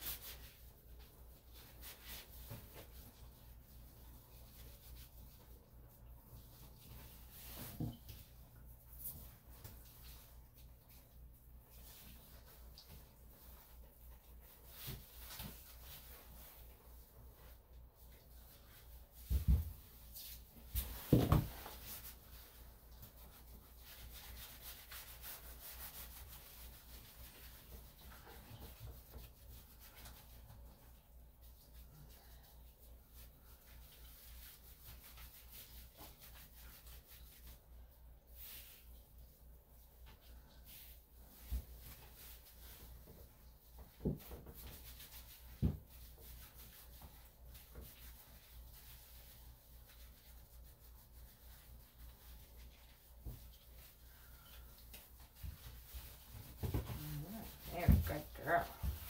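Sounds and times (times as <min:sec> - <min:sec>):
hands scrubbing wet fur: 0:00.0 - 0:59.0.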